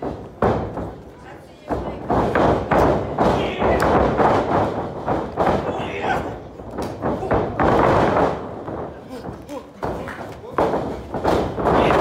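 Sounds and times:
heavy thuds of feet on ring boards: 0:00.0 - 0:12.0
voices in a hall: 0:00.0 - 0:12.0.

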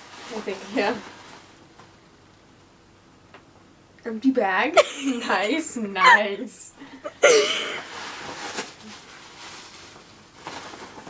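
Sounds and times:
paper gift bag rustling: 0:00.0 - 0:01.6, 0:07.8 - 0:11.0
sharp paper crinkle: 0:07.9 - 0:11.0.

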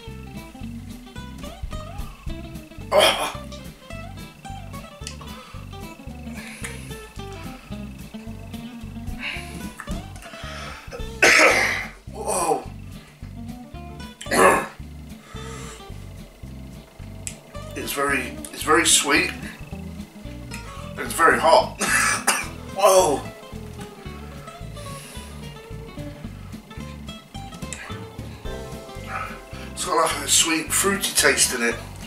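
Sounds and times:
background music with steady beat: 0:00.0 - 0:32.0
man coughing: 0:02.9 - 0:03.4, 0:11.0 - 0:12.0, 0:14.3 - 0:14.8, 0:21.8 - 0:23.1.

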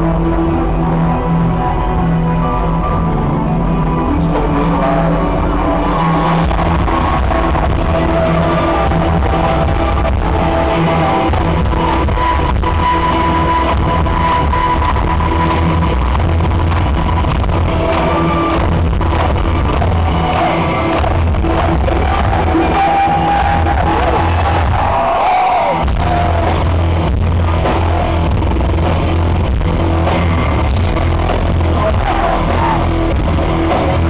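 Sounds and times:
drums: 0:00.0 - 0:34.0
electric guitar: 0:00.0 - 0:34.0
live metal band playing: 0:00.0 - 0:34.0.

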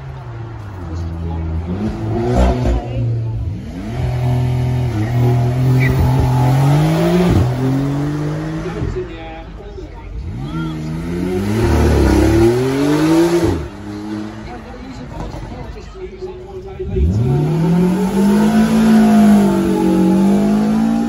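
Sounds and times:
car engine accelerating hard: 0:00.0 - 0:15.5, 0:16.6 - 0:21.0.

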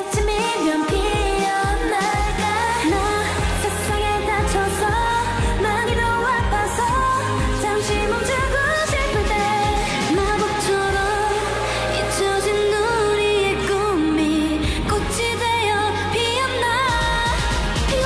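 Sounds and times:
electronic pop backing track: 0:00.0 - 0:18.0
women singing: 0:00.0 - 0:18.0.

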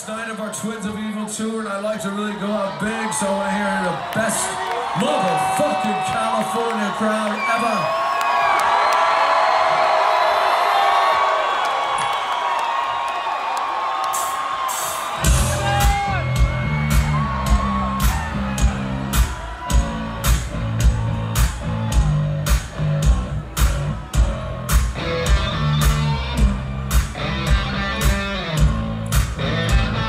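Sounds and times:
crowd cheering and whooping: 0:01.8 - 0:30.0
live rock band: 0:14.2 - 0:30.0
heavy drums and bass: 0:14.9 - 0:30.0.

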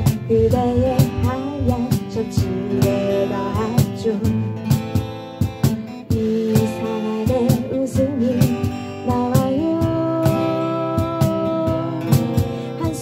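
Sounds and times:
person singing: 0:00.0 - 0:04.6, 0:06.1 - 0:13.0
acoustic guitar strummed: 0:00.0 - 0:13.0
cajon hits: 0:00.0 - 0:13.0.

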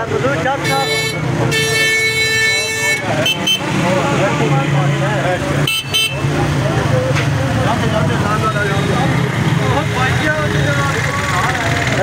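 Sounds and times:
people talking: 0:00.0 - 0:12.0
vehicle horn: 0:00.6 - 0:03.8, 0:05.6 - 0:06.2.

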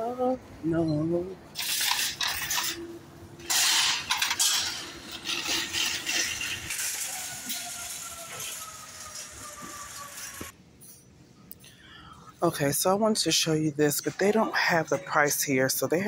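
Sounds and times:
shopping cart clattering free: 0:01.6 - 0:10.5
shopping cart rattling on pavement: 0:01.6 - 0:10.5.

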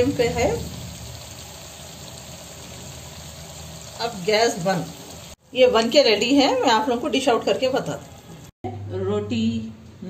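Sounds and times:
food sizzling and bubbling in pan: 0:00.0 - 0:08.6.

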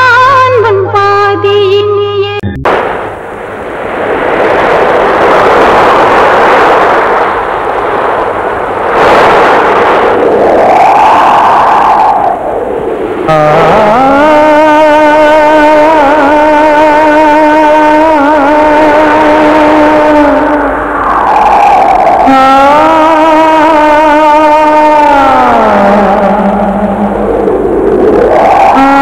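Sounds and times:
loud rushing noise: 0:02.6 - 0:29.0
rising and falling tone: 0:08.9 - 0:29.0.

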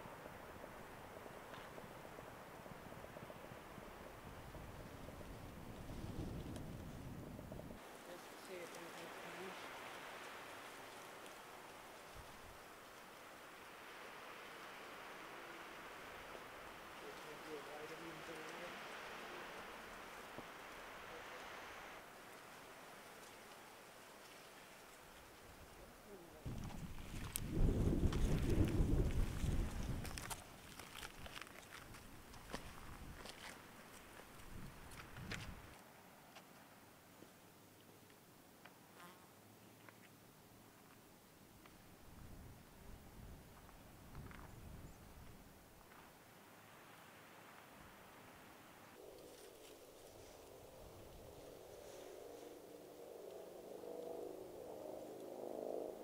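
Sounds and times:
wind rumbling on microphone: 0:00.0 - 0:12.8, 0:24.8 - 0:35.8, 0:41.9 - 0:45.9, 0:49.0 - 0:56.0
footsteps crunching on loose rock: 0:26.5 - 0:35.6.

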